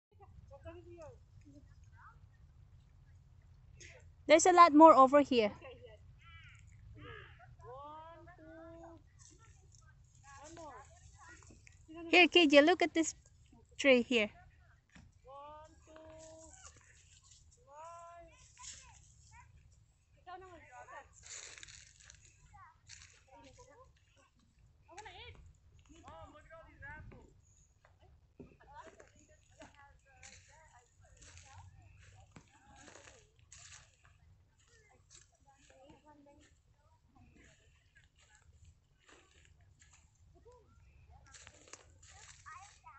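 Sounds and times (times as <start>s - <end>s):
faint voices talking: 28.0s - 42.9s.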